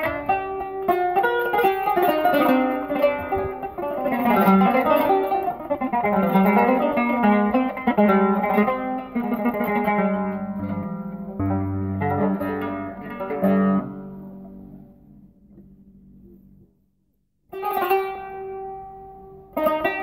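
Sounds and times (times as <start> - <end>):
plucked zither improvising: 0.0 - 15.8, 17.5 - 20.0.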